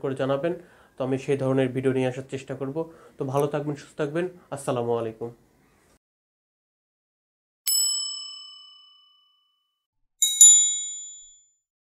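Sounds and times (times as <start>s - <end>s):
bell-like dings: 7.7s - 11.6s.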